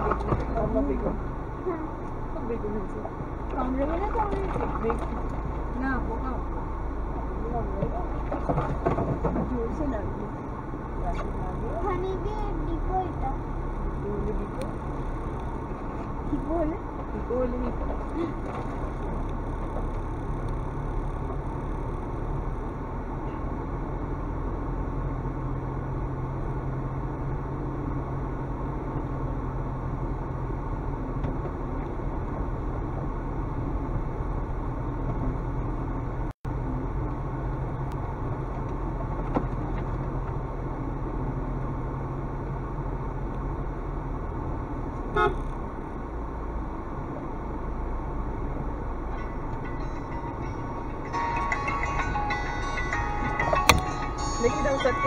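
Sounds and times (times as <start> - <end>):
car engine: 0.0 - 55.0
tyres on dirt track: 0.0 - 55.0
car horn toot: 45.1 - 45.5.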